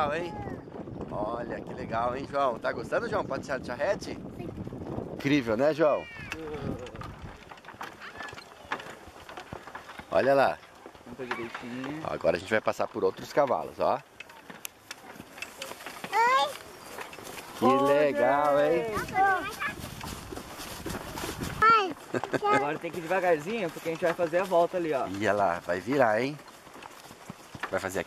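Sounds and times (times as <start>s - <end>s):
horse hooves clip-clopping: 0.0s - 28.0s
cart knocking and clicking: 4.6s - 28.0s
person speaking: 21.8s - 25.4s.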